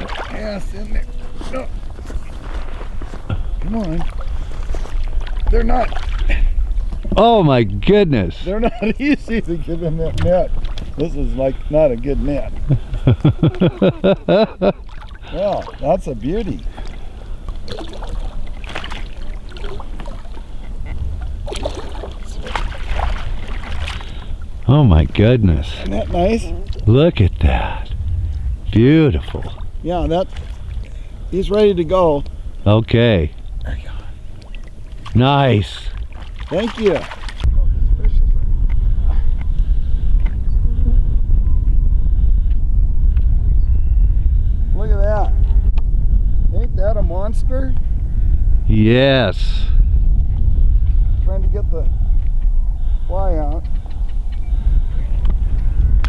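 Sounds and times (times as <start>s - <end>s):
wind buffeting microphone: 0.0s - 56.0s
man laughing heartily: 8.4s - 9.2s, 12.6s - 14.9s.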